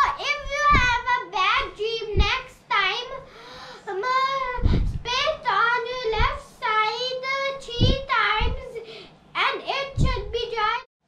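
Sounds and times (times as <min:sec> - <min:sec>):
girl speaking in sing-song voice: 0:00.0 - 0:10.9.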